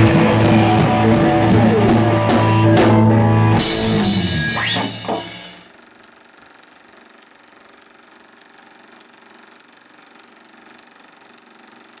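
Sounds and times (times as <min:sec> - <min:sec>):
film projector clattering: 0:05.0 - 0:12.0.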